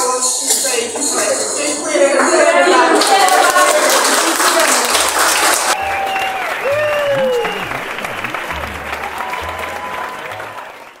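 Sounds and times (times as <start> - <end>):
audience applause: 2.2 - 11.0.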